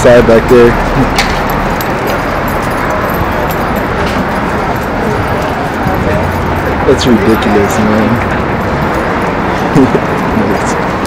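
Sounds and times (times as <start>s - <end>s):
passing traffic: 0.0s - 11.0s
person laughing: 9.6s - 10.2s.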